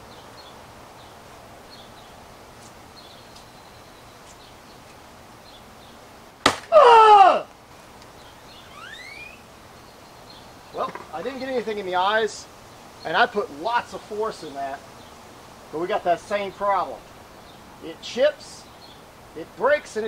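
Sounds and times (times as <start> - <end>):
spear point cracking on steel: 6.4 - 6.8
loud yell falling in pitch: 6.7 - 7.5.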